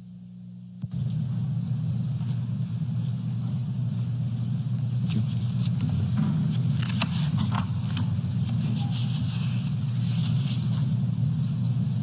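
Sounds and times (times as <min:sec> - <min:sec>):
low rumble of hall ambience: 0:00.0 - 0:12.0.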